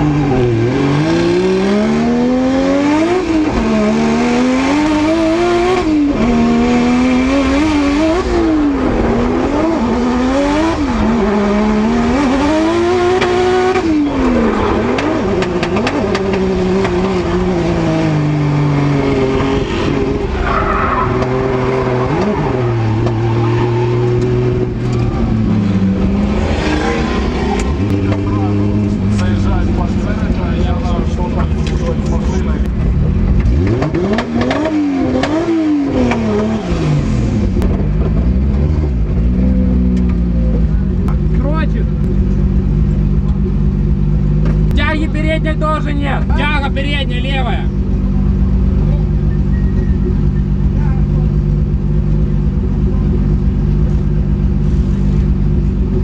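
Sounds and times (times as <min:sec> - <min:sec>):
car engine revving: 0:00.0 - 0:56.0
tyre squeal: 0:19.2 - 0:25.4, 0:49.1 - 0:50.8.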